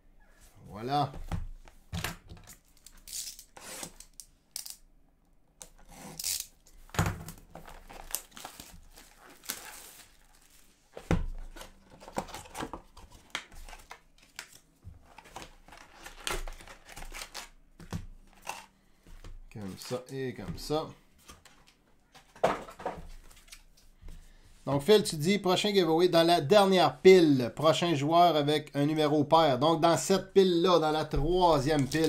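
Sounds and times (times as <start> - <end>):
cardboard and wrapping ripping: 7.6 - 10.6.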